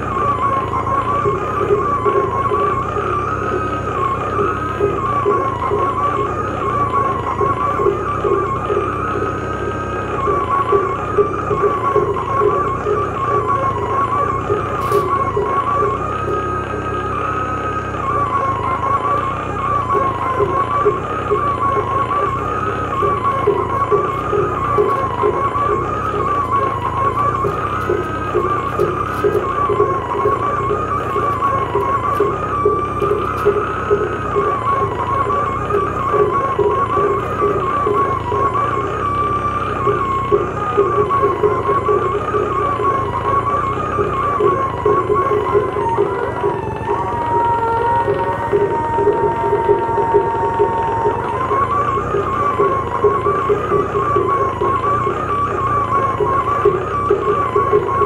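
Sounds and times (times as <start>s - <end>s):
noise bed: 0.0s - 58.0s
pulsing low drone: 0.0s - 58.0s
wavering high electronic tone: 0.0s - 58.0s.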